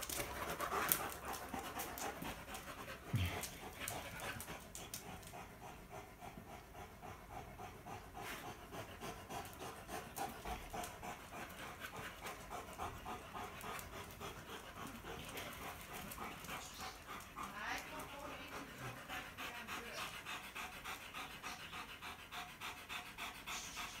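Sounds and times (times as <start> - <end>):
dog panting: 0.0 - 24.0.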